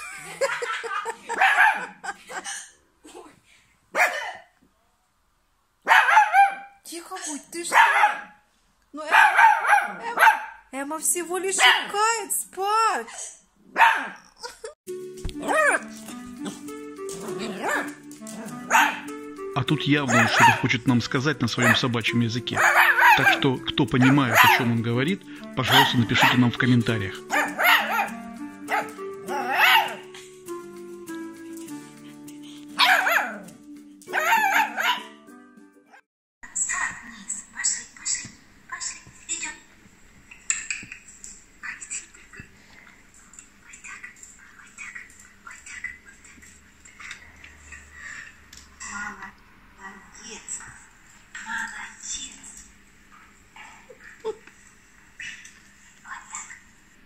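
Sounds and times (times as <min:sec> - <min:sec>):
puppy barking and yelping: 0:01.0 - 0:02.1, 0:05.9 - 0:06.8, 0:07.7 - 0:08.4, 0:09.1 - 0:10.6, 0:13.7 - 0:14.6, 0:15.4 - 0:16.6, 0:17.2 - 0:19.1, 0:20.1 - 0:20.6, 0:22.6 - 0:23.4, 0:24.0 - 0:24.7, 0:27.3 - 0:30.1, 0:32.8 - 0:33.5, 0:34.1 - 0:35.1
background music: 0:14.9 - 0:36.0
puppy giving a high call: 0:20.1 - 0:20.6, 0:34.1 - 0:35.1.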